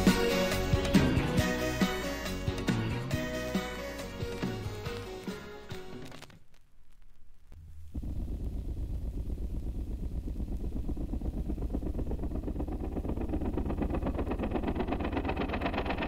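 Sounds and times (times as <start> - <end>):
train chugging: 10.6 - 16.0.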